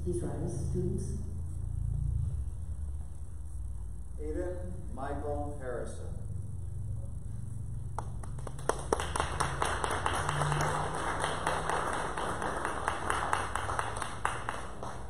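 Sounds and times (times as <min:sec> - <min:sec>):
audience clapping: 0:07.9 - 0:15.0.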